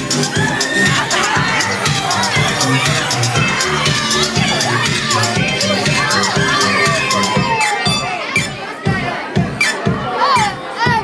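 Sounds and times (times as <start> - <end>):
crowd shouting and cheering: 0.0 - 11.0
loud dance music: 0.0 - 11.0.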